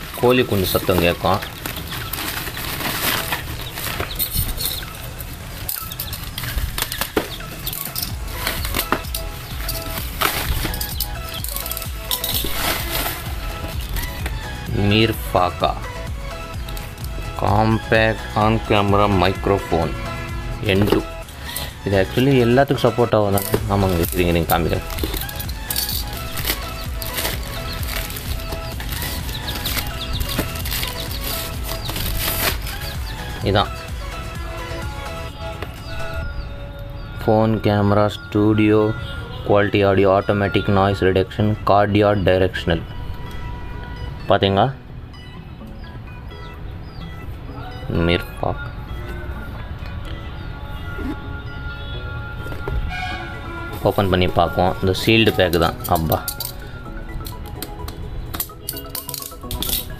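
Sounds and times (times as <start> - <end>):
bubble wrap crackling: 0.0 - 4.9, 6.2 - 14.1, 23.4 - 33.0
plastic mailer bag rustling: 0.0 - 14.2, 20.7 - 33.6
background music: 0.0 - 59.9.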